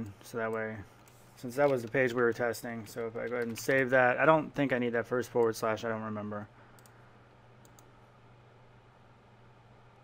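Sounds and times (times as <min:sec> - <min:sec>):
low steady hum: 0:00.0 - 0:10.0
faint clicks: 0:06.7 - 0:07.0, 0:07.6 - 0:07.9.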